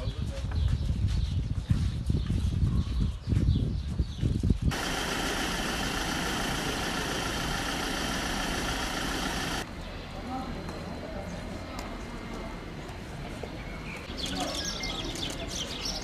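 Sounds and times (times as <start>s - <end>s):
wind buffeting microphone: 0.0s - 6.7s
vehicle engine idling: 4.7s - 9.7s.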